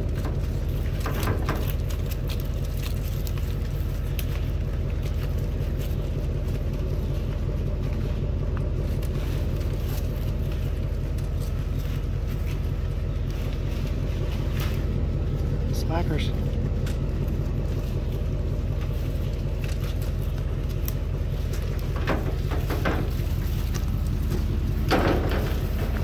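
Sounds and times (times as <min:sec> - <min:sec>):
vehicle engine idling: 0:00.0 - 0:26.0.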